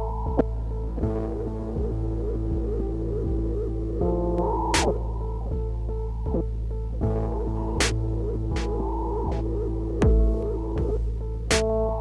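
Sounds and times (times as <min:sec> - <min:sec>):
kick drum with pitch sweep: 0:00.0 - 0:11.8
droning synth chord: 0:00.0 - 0:12.0.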